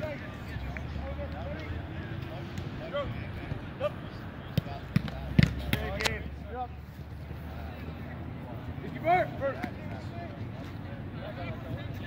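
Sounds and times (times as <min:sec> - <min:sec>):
soccer balls struck with thuds: 0:04.5 - 0:06.2.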